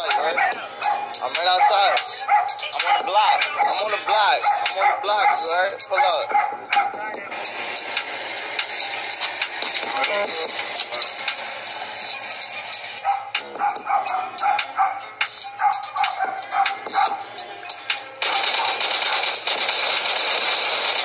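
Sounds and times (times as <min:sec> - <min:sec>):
rap beat: 0:00.0 - 0:21.0
gunshots: 0:18.2 - 0:21.0.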